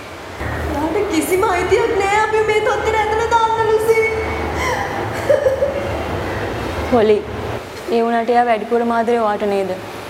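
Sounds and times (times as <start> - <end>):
young woman sobbing: 4.5 - 6.5.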